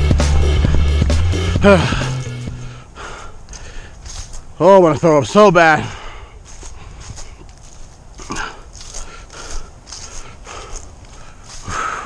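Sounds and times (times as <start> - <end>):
footsteps crunching on dry leaves: 0.0 - 12.0
person breathing hard: 1.4 - 4.4, 5.8 - 12.0.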